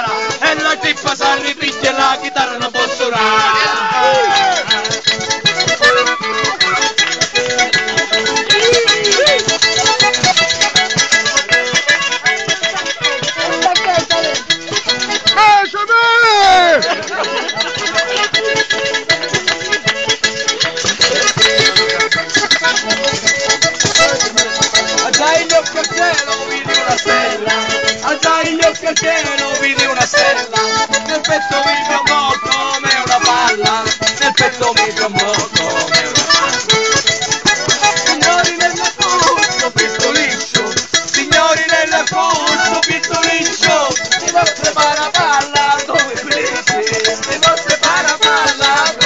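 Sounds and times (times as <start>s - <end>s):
person singing: 0.0s - 5.2s, 8.4s - 9.8s, 23.9s - 36.9s, 37.6s - 49.0s
button accordion folk dance music: 0.0s - 49.0s.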